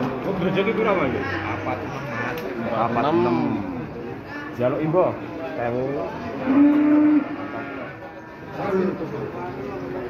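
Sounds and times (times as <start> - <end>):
cow mooing: 6.4 - 8.0.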